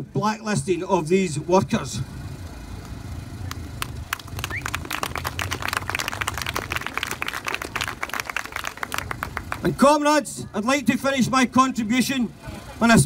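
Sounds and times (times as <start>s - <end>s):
low steady rumble: 0.0s - 13.0s
crowd clapping: 3.4s - 9.8s.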